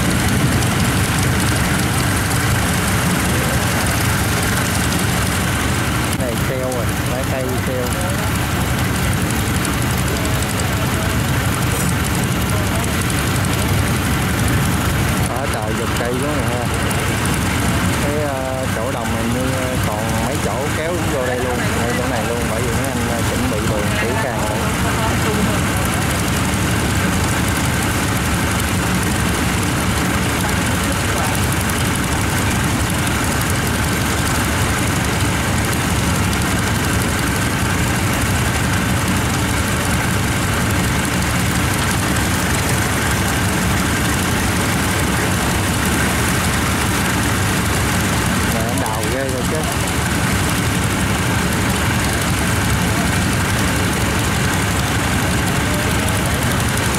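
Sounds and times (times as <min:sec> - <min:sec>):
diesel engine idling: 0:00.0 - 0:56.9.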